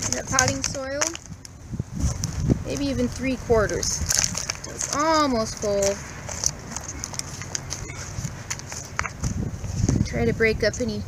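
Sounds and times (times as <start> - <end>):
hands pressing soil in foil tray: 0.0 - 1.4, 2.0 - 10.1
wind rumbling on microphone: 0.0 - 11.0.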